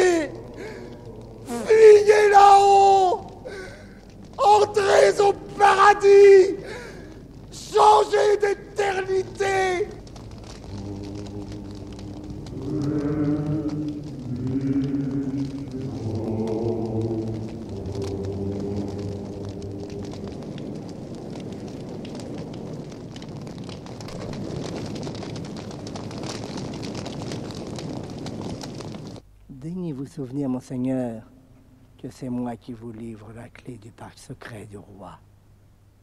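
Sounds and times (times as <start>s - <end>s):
fire crackling: 0.0s - 36.0s.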